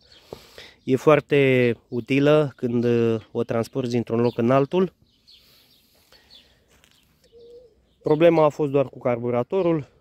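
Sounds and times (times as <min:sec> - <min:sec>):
faint high bird chirps: 0:00.0 - 0:09.9.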